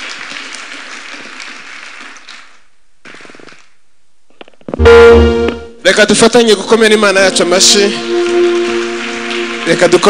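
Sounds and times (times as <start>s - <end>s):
congregation applauding: 0.0s - 3.8s, 6.8s - 10.0s.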